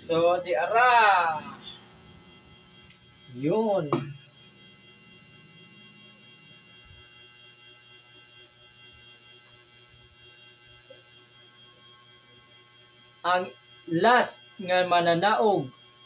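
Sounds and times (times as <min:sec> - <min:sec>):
faint steady background tones: 0:00.0 - 0:16.0.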